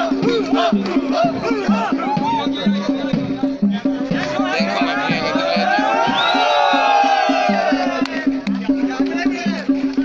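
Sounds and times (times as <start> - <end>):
rapid drum beat: 0.0 - 10.0.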